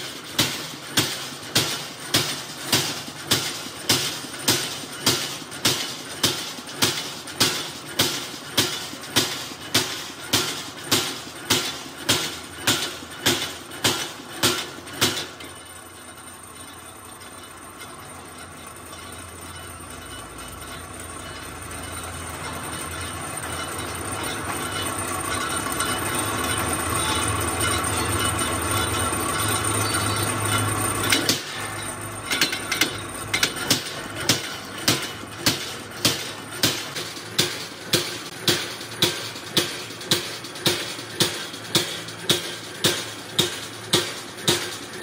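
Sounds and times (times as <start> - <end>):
punch press metal clanks: 0.0 - 15.8, 16.5 - 45.0
press running drone: 19.2 - 45.0.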